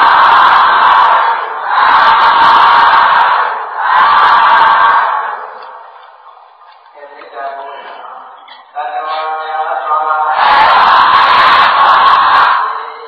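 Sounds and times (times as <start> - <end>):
group of men chanting shouts: 0.0 - 5.6, 9.9 - 13.0.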